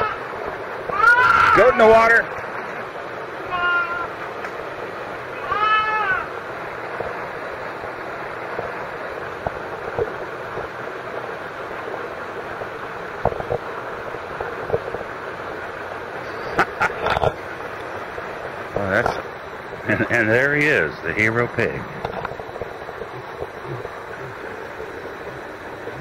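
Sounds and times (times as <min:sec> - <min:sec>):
flowing water rushing: 0:00.0 - 0:26.0
baby goat bleating: 0:00.9 - 0:01.6, 0:03.5 - 0:04.1, 0:05.4 - 0:06.3.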